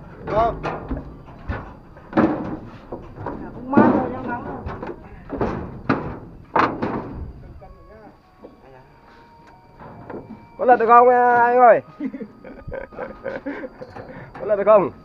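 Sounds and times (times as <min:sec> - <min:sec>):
knocks and thumps on boat deck: 0:00.0 - 0:07.4
indistinct talking: 0:03.2 - 0:15.0.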